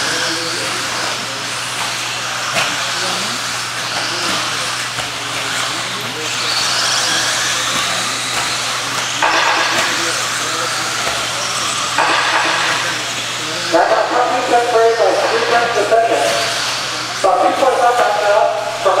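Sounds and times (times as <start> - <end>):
rc car motors whining: 0.0 - 19.0.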